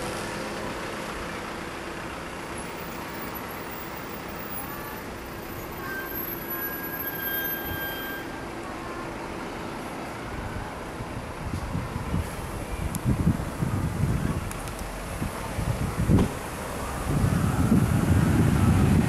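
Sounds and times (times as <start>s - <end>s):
road traffic hum: 0.0s - 19.0s.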